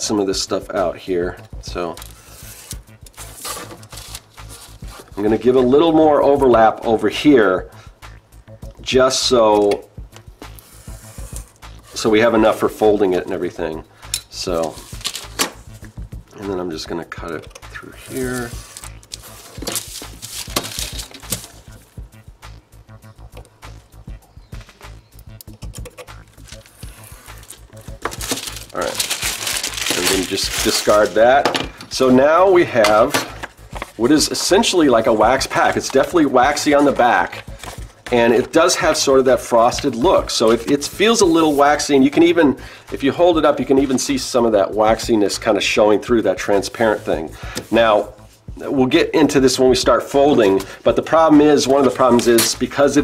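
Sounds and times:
knife cutting paper: 0:02.0 - 0:05.1, 0:18.0 - 0:21.6
wax paper rustling: 0:02.0 - 0:05.3, 0:14.5 - 0:15.6, 0:17.9 - 0:21.8, 0:26.3 - 0:41.8, 0:50.2 - 0:52.6.

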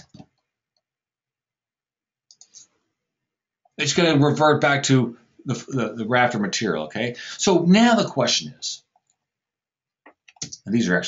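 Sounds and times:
computer mouse clicks: 0:02.3 - 0:02.7.

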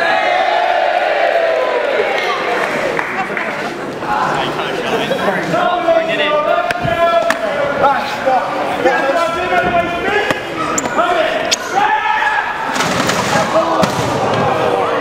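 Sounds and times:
crowd voices: 0:00.0 - 0:15.0
wrestlers shouting: 0:05.4 - 0:15.0.

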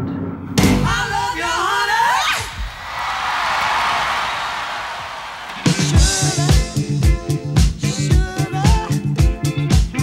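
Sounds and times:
crowd cheering: 0:02.2 - 0:06.8.

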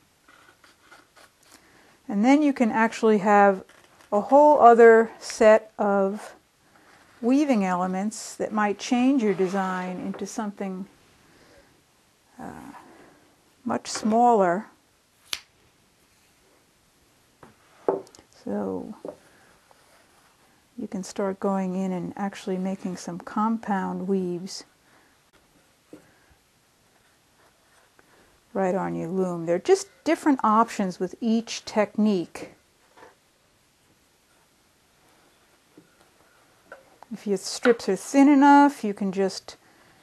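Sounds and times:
cloth strips threaded through weaving: 0:00.0 - 0:10.4.

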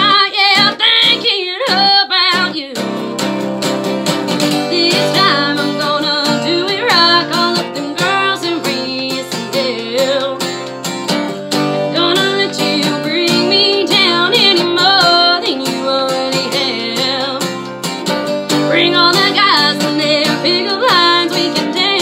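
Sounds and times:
acoustic guitar strumming: 0:00.0 - 0:22.0
woman singing country song: 0:00.0 - 0:22.0.

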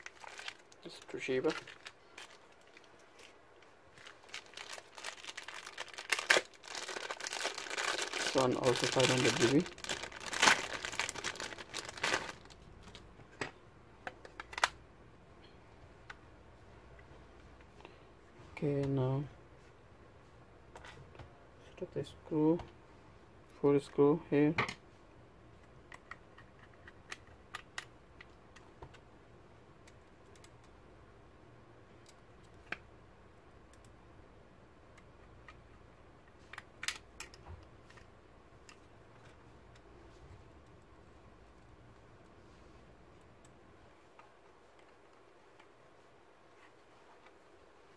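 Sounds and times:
plastic bag crinkling: 0:00.0 - 0:13.0.

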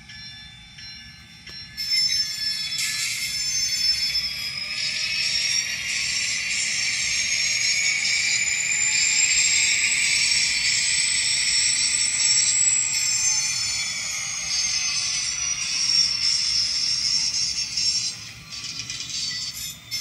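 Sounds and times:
locomotive bell ringing: 0:00.0 - 0:20.0
model locomotive diesel sound: 0:00.0 - 0:20.0
rising whine: 0:00.0 - 0:20.0.

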